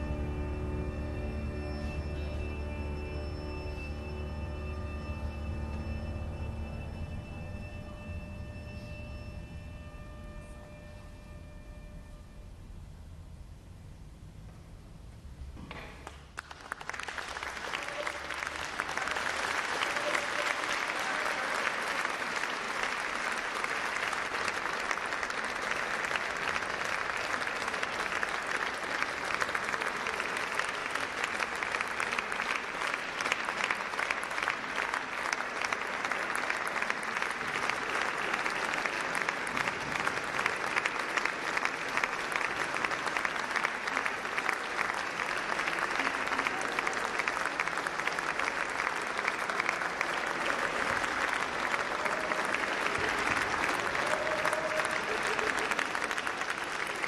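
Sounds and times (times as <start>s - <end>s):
audience applauding: 15.7s - 57.0s.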